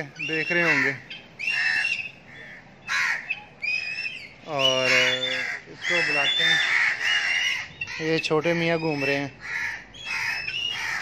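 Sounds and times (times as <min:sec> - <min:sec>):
crows cawing: 0:00.0 - 0:11.0.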